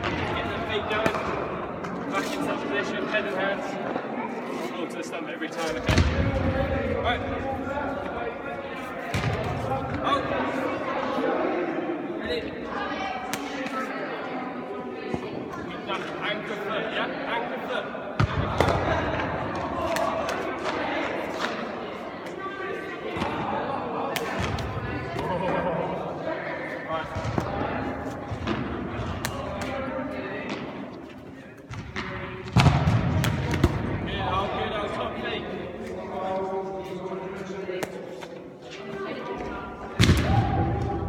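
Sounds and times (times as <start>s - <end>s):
voices echoing in a hall: 0.0s - 41.0s.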